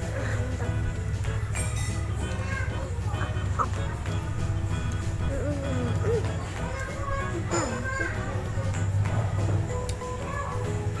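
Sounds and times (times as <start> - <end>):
background music with low beat: 0.0 - 11.0
child's voice: 1.4 - 4.1, 5.2 - 8.9, 10.0 - 10.9.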